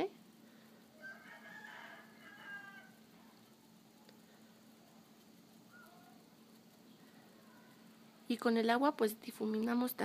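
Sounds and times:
steady low hum: 0.0 - 10.0
distant animal cry: 1.0 - 3.1.

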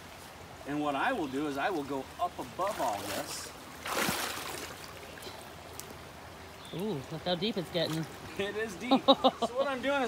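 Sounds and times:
stream flowing: 0.0 - 10.0
leg splashing through water: 2.6 - 6.0.

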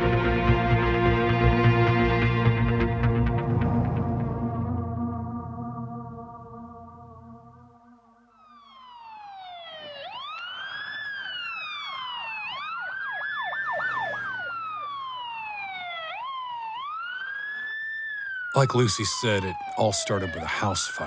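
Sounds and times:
ambient music: 0.0 - 12.7, 13.6 - 16.9
police siren wailing: 0.0 - 21.0
siren yelps: 8.0 - 21.0.

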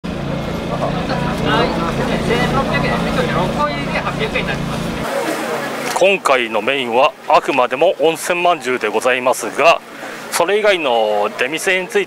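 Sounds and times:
low motor hum: 0.0 - 5.8
crowd chatter: 0.1 - 12.0.

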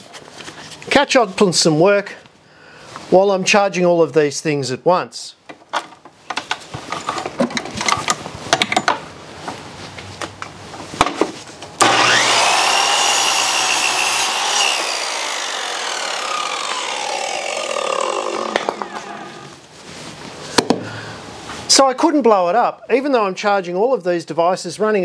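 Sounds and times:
circular saw motor whining: 11.8 - 19.6.

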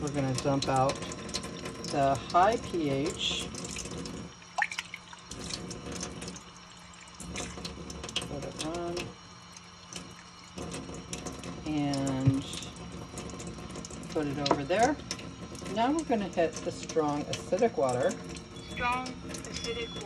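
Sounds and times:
water running into metal sink: 0.0 - 20.0.

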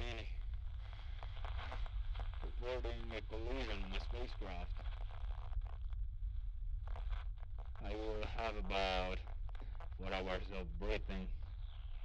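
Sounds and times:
faint ticks: 9.2 - 10.0.

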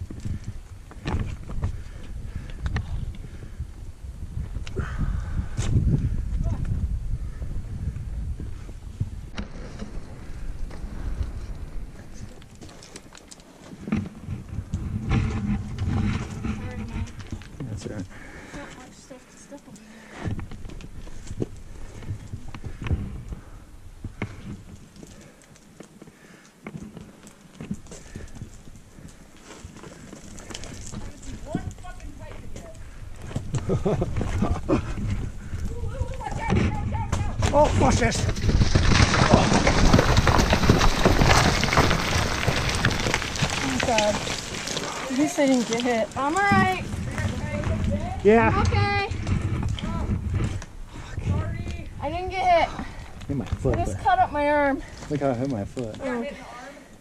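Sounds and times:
wind rumble on microphone: 0.0 - 12.8, 13.8 - 18.5, 20.2 - 24.9, 30.5 - 44.4, 46.0 - 54.3
stones clinking and shifting underfoot: 9.4 - 50.8, 51.4 - 56.4
voices: 35.5 - 38.2.

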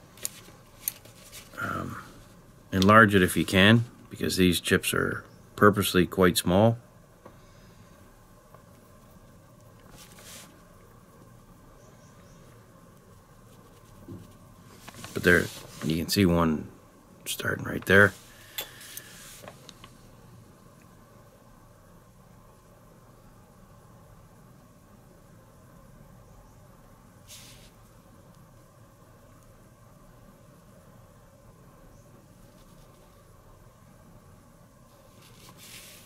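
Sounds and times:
low room hiss: 0.0 - 36.0.

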